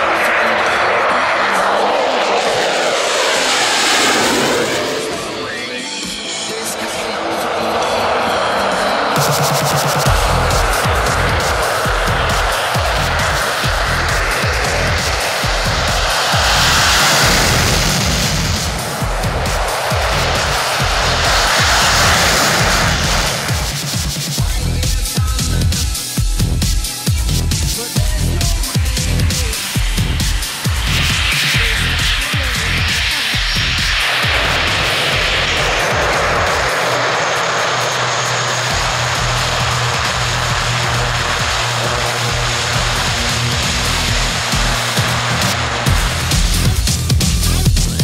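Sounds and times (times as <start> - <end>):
fighter jets roaring: 0.0 - 24.8, 27.4 - 46.7
turboprop engines droning: 0.0 - 48.0
electronic music with deep beat: 8.0 - 48.0.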